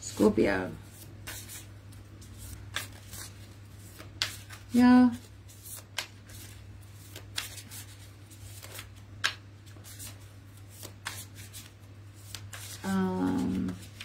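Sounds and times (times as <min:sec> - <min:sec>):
cards being shuffled: 0:00.8 - 0:14.0.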